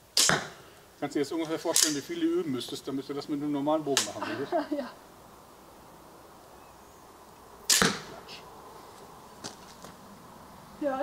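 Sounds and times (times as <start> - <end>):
arrow shot from a bow: 0.1 - 0.6, 1.7 - 2.0, 7.6 - 8.4.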